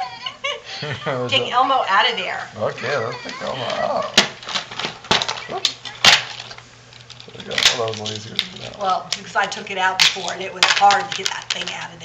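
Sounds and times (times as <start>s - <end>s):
packaging rustling: 3.3s - 9.0s, 10.0s - 12.0s
packaging cracking and snapping: 3.6s - 8.8s, 10.0s - 11.9s.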